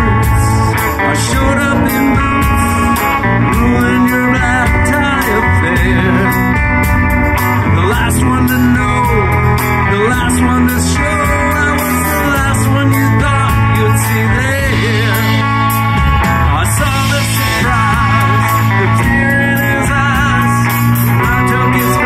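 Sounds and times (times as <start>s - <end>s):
bass guitar: 0.0s - 22.0s
drum beat: 0.0s - 22.0s
electric guitar: 0.0s - 22.0s.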